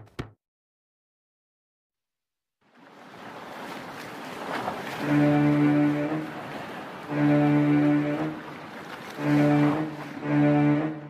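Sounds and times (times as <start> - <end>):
rushing sea water: 2.6 - 11.0
water splash: 2.7 - 11.0.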